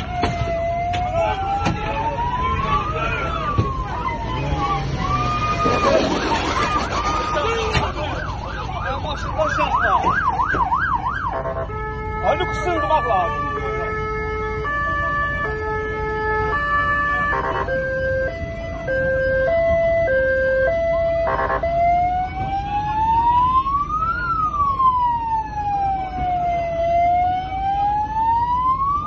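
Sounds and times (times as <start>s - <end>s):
low road rumble: 0.0s - 29.0s
police siren: 0.0s - 29.0s.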